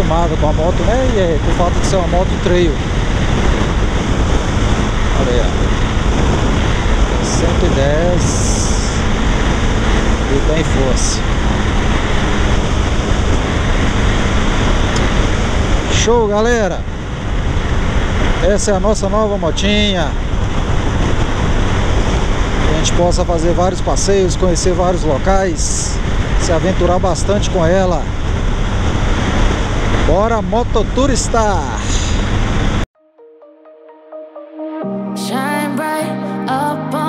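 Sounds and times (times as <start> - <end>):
motorcycle engine drone: 0.0 - 32.9
road noise: 0.0 - 32.9
wind rush on microphone: 0.0 - 32.9.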